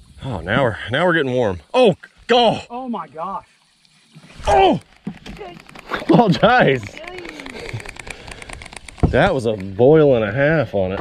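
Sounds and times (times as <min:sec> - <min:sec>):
fishing reel ticking: 0:04.4 - 0:10.2.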